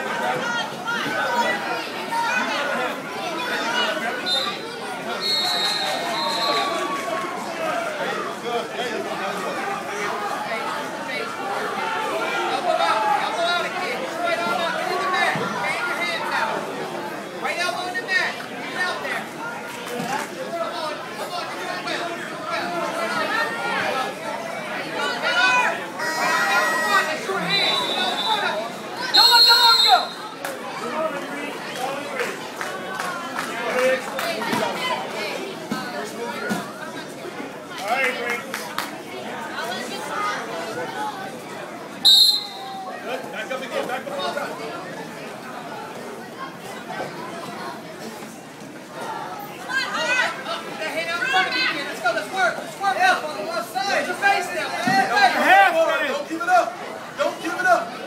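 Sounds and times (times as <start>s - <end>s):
crowd voices in large hall: 0.0s - 58.0s
referee whistle blast: 5.2s - 6.8s, 27.4s - 30.2s, 42.1s - 42.8s.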